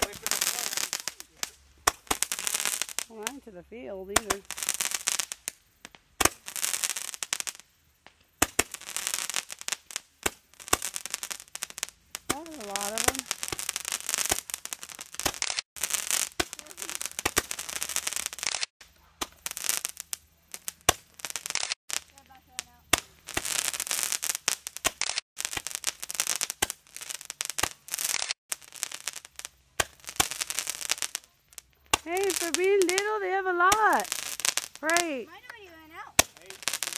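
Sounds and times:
firework shots hissing and cracking: 0:00.0 - 0:36.9.

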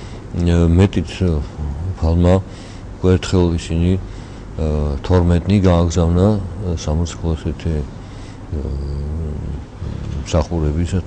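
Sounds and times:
man speaking: 0:00.3 - 0:11.0
man humming hesitantly: 0:08.5 - 0:10.3.

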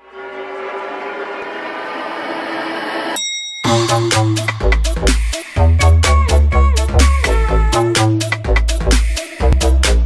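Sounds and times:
dance beat with heavy bass: 0:03.7 - 0:10.0.

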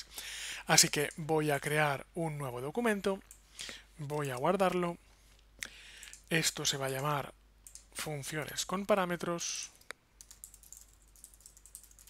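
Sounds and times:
keyboard typing: 0:07.6 - 0:07.9, 0:10.2 - 0:12.0.

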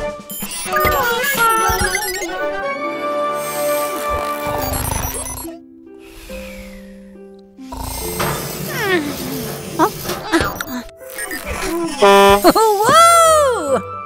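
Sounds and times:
light background music: 0:00.0 - 0:14.0.

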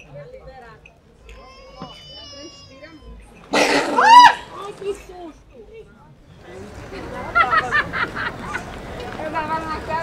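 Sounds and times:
street voices: 0:00.0 - 0:10.0.

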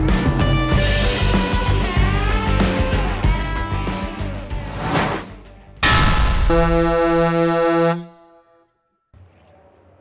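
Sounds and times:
whoosh: 0:04.6 - 0:06.4
loud hit: 0:05.8 - 0:07.2.

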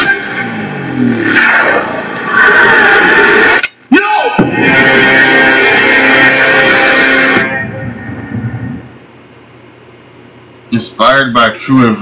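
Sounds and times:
sharp hit: 0:04.4 - 0:08.4
dramatic trailer score: 0:04.4 - 0:08.8.

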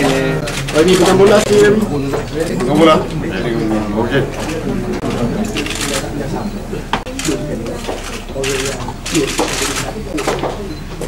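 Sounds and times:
people talking: 0:00.0 - 0:11.0
camera shutters clicking rapidly: 0:05.5 - 0:06.0, 0:07.2 - 0:10.4.

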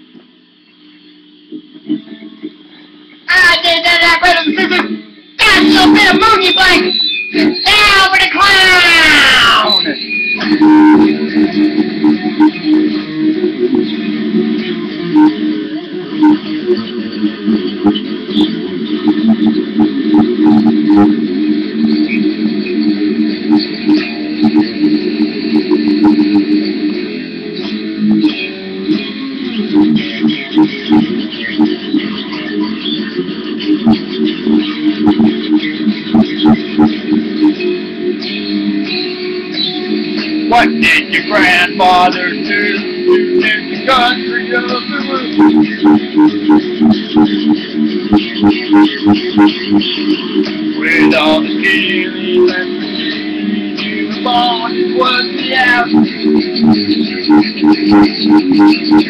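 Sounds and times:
electric guitar solo: 0:05.4 - 0:59.0.

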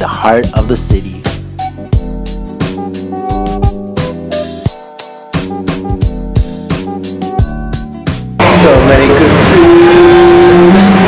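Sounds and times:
road traffic: 0:08.4 - 0:11.0.

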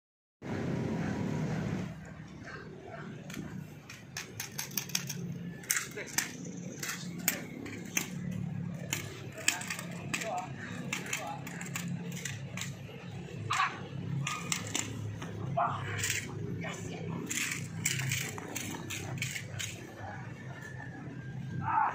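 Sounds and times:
voices talking low: 0:00.9 - 0:21.9.

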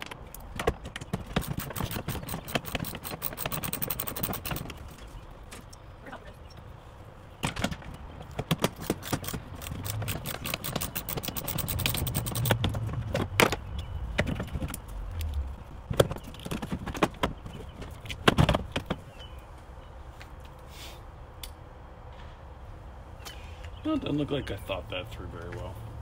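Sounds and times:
metal clinking and rattling: 0:08.8 - 0:12.6.

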